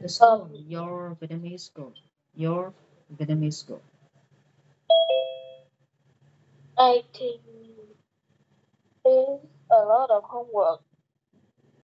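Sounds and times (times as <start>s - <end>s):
two-note electronic chime: 4.9s - 5.6s.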